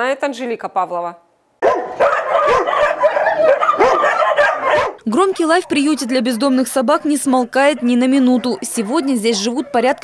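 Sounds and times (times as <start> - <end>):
many dogs barking: 1.6 - 10.0.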